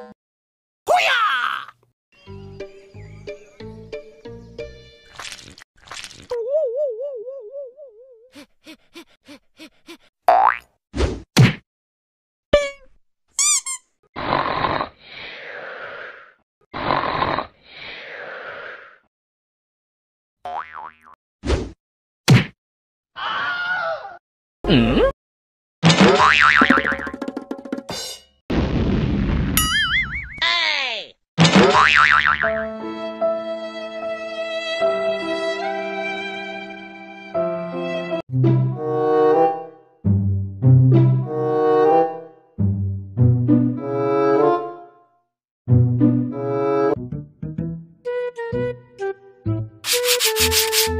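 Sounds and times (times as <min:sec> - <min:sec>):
cartoon wobbling boing: 0:26.1 - 0:27.2.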